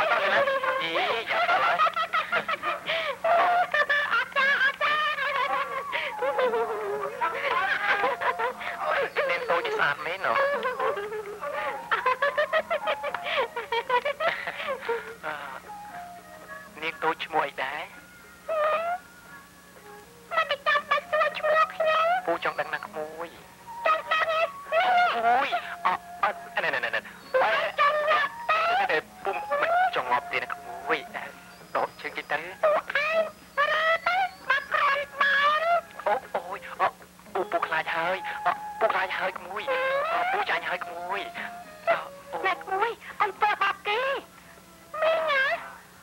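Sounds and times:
distressed voices crying out: 0.0 - 19.6, 20.2 - 46.0
film soundtrack hum: 0.0 - 46.0.

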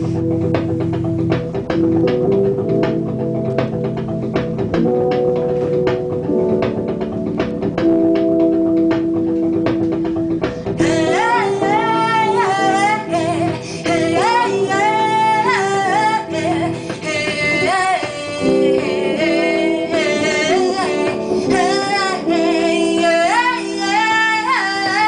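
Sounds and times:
instrumental accompaniment: 0.0 - 25.0
woman singing: 10.8 - 25.0.

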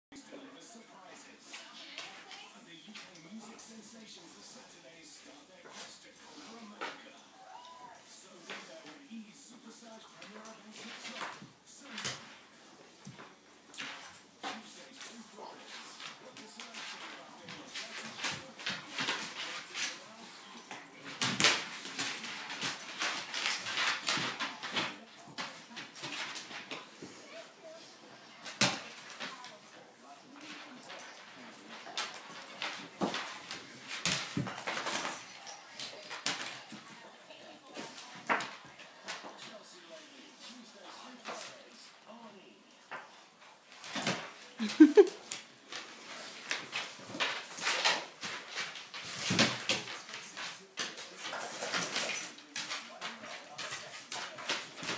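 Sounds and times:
dogs scuffling on wooden floor: 0.2 - 54.9.

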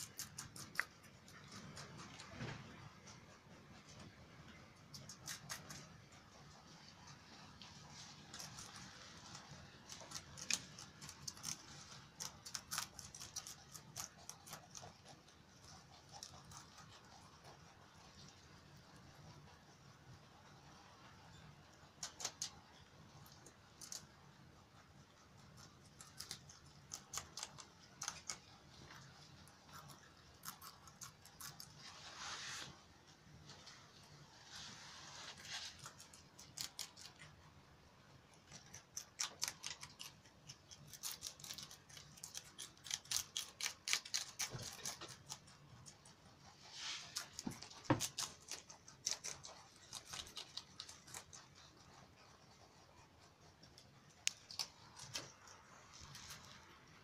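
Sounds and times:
rabbits chewing leafy greens: 0.0 - 57.0.

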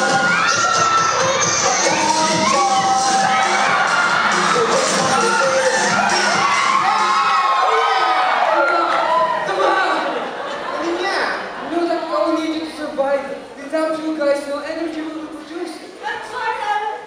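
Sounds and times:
crowd cheering and shouting: 0.0 - 12.2.

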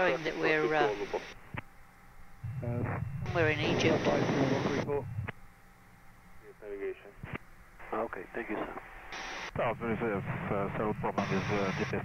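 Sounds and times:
low hum: 0.0 - 12.0
air traffic control radio voices: 2.5 - 5.4, 6.5 - 12.0.

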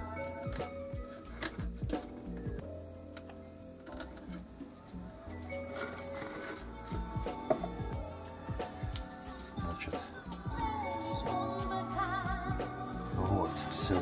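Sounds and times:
music with bass and beat: 0.0 - 2.9, 4.0 - 14.0.

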